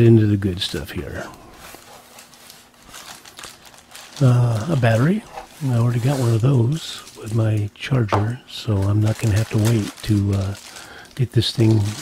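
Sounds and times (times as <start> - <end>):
plastic packaging crinkling: 0.4 - 12.0
cardboard rustling: 0.7 - 12.0.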